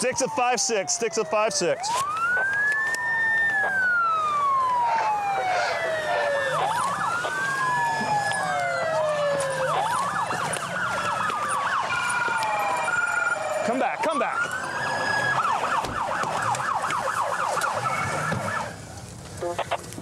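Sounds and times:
yelping siren: 0:00.0 - 0:19.8
police sirens wailing: 0:00.0 - 0:20.0.

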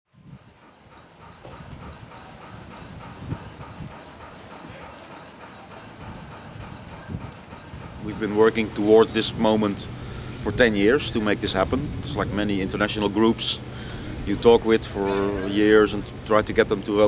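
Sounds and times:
rhythmic mechanical clatter: 0:00.2 - 0:17.0
low rumble: 0:09.8 - 0:15.4.

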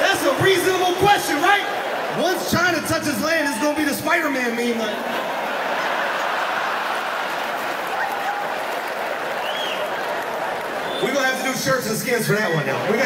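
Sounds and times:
audience laughing and applauding: 0:00.0 - 0:04.2, 0:04.8 - 0:13.0.

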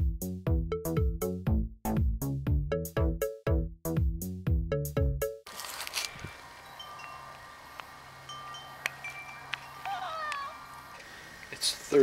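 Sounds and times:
background music: 0:00.0 - 0:05.5.

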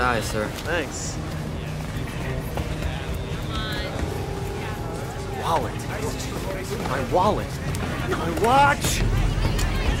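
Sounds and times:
faint background music: 0:00.0 - 0:10.0
voices: 0:00.0 - 0:10.0
wind: 0:00.0 - 0:10.0.

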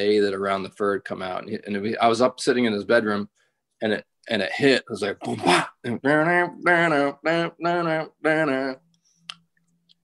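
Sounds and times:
man vocally imitating music: 0:05.2 - 0:09.5.

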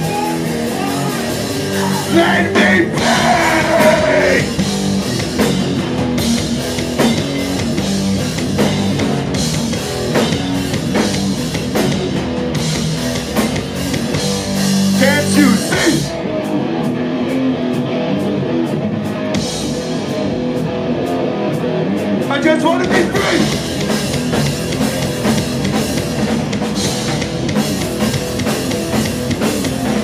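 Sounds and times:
rock band playing live: 0:00.0 - 0:30.0.

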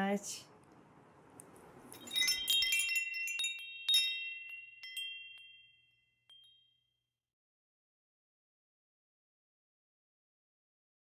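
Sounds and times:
wind chimes tinkling: 0:01.9 - 0:07.0.

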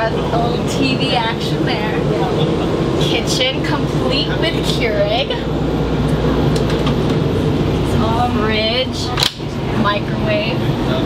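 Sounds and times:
bus machinery rumble and hum: 0:00.0 - 0:11.0.

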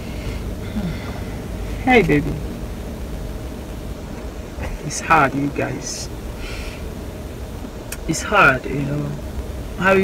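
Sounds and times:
low hum in car cabin: 0:00.0 - 0:10.0.

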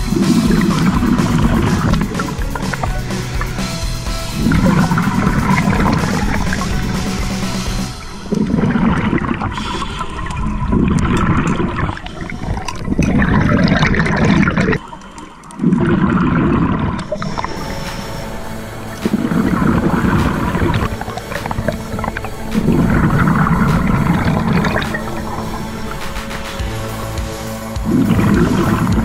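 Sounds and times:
diver breathing through regulator: 0:00.0 - 0:29.0
underwater air bubbling: 0:00.0 - 0:29.0.

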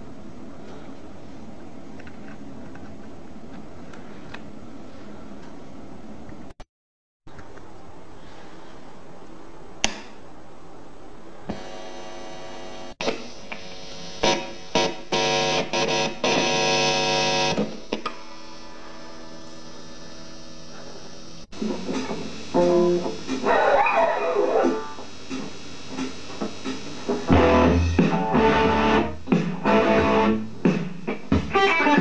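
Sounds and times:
amp switch click: 0:09.8 - 0:10.1
guitar cable buzzing hum: 0:11.5 - 0:23.5, 0:24.7 - 0:30.6
distorted electric guitar: 0:11.5 - 0:32.0
amp hiss: 0:13.1 - 0:15.1, 0:17.8 - 0:28.3.

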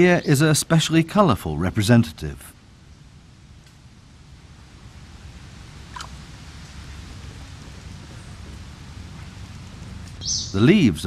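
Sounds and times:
even hiss: 0:00.0 - 0:11.0
low rumble: 0:02.5 - 0:10.3.

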